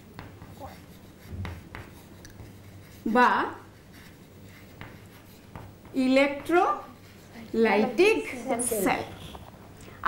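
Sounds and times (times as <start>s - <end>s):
chalk tapping and scraping on chalkboard: 0.0s - 9.4s.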